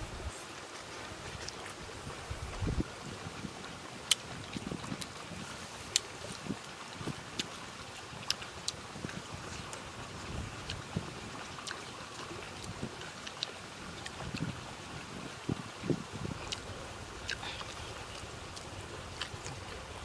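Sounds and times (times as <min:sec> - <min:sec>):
wind buffeting microphone: 0:00.0 - 0:00.4, 0:01.1 - 0:11.6, 0:12.3 - 0:20.0
man chewing food: 0:16.3 - 0:19.8.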